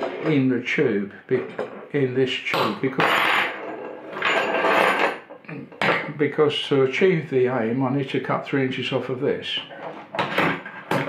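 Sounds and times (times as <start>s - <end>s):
parts scraping on a tabletop: 0.0s - 0.4s, 3.4s - 5.4s, 9.6s - 11.0s.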